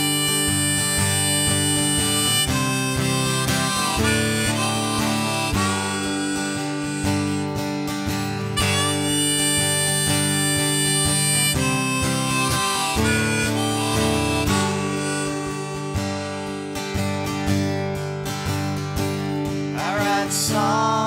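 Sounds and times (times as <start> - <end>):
harmonica wailing melody: 0.0 - 21.0
strummed acoustic guitar: 0.0 - 21.0.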